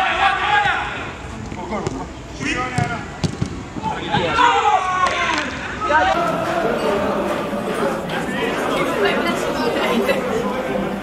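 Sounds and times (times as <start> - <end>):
chatter of many voices: 5.5 - 11.0.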